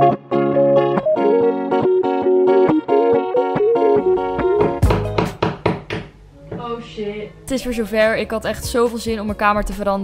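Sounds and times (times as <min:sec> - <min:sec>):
rapid knocks: 0:04.4 - 0:06.2.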